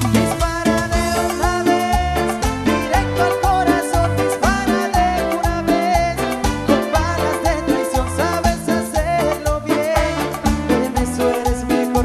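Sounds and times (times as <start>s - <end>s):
dance band playing: 0.0s - 12.0s.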